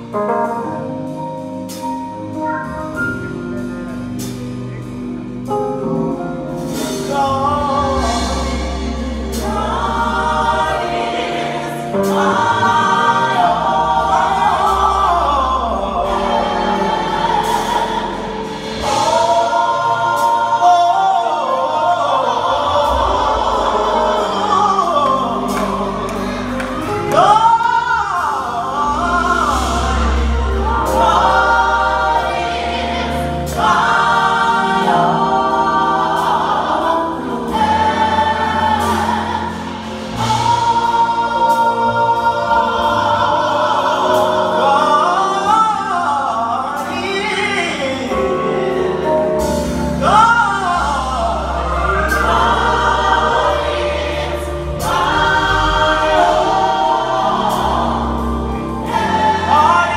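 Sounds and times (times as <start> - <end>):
gospel choir singing: 0.0 - 59.9.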